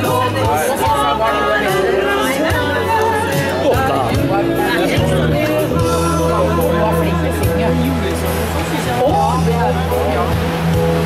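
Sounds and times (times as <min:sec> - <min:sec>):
person singing live: 0:00.0 - 0:07.9
bass guitar: 0:00.0 - 0:11.0
guests chattering: 0:00.0 - 0:11.0.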